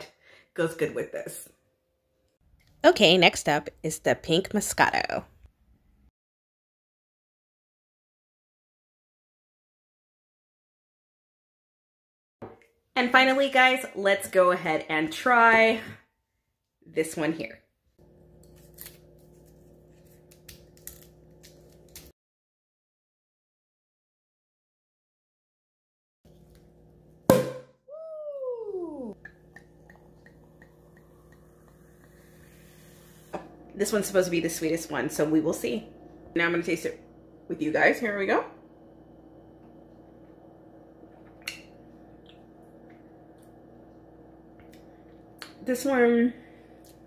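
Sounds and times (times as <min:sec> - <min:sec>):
foil crinkling and crackling: 0:18.6 - 0:22.1
low steady hum: 0:28.9 - 0:47.0.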